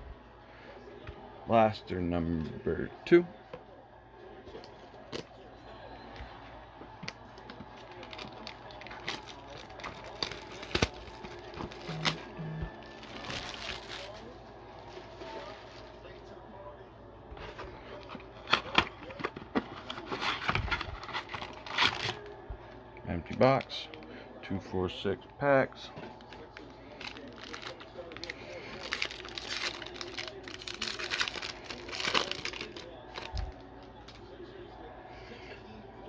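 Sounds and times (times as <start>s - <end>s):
shrink wrap crinkling: 7.1s - 16.2s, 17.4s - 22.4s, 26.1s - 34.3s
scissors cutting shrink wrap: 7.9s - 12.3s, 19.9s - 22.3s, 27.0s - 33.4s.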